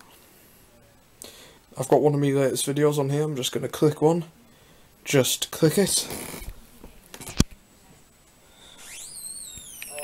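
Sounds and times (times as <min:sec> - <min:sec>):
whistle gliding up and falling: 0:08.8 - 0:10.0.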